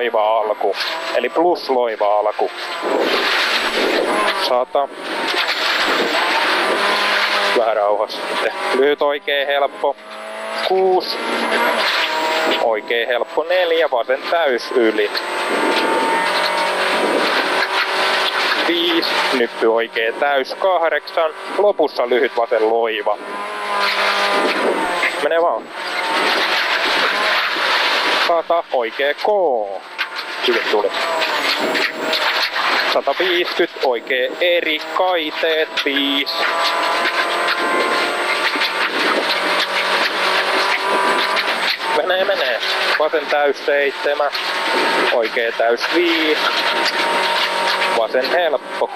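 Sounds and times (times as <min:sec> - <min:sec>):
gravel and tyre noise: 0:00.0 - 0:48.9
rally car engine running hard: 0:00.0 - 0:48.9.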